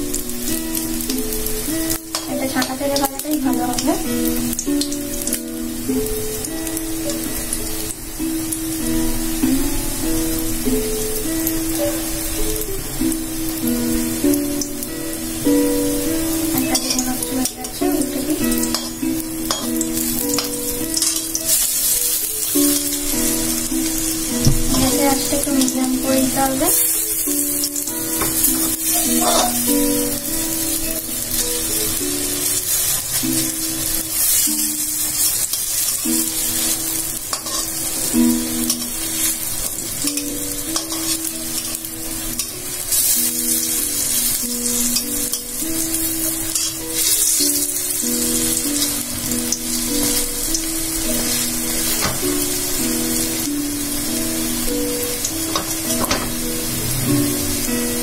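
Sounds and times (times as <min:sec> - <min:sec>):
fritters sizzling in oil: 0:00.0 - 0:58.0
soft background music: 0:00.0 - 0:58.0
metal spatula stirring: 0:01.9 - 0:04.0, 0:16.5 - 0:24.1, 0:24.8 - 0:54.2.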